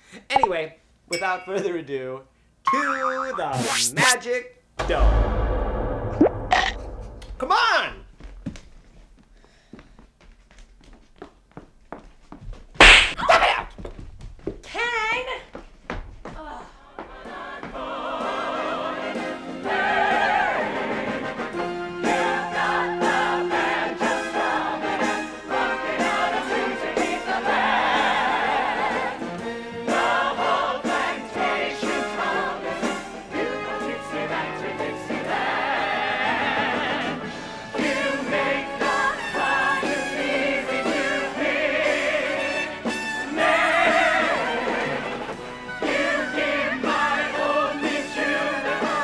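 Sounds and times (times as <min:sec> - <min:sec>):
wavering voice-like tone: 0:02.7 - 0:04.2
loud thump: 0:04.8 - 0:07.5.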